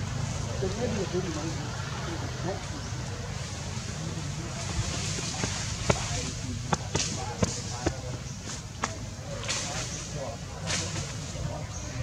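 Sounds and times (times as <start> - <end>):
people talking indistinctly: 0.0 - 12.0
steady outdoor hiss: 0.0 - 12.0.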